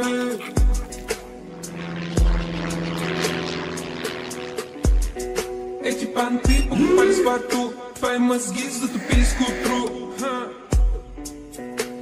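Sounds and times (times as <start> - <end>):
aircraft fly-over rush: 0.0 - 10.0
rap beat: 5.9 - 10.3.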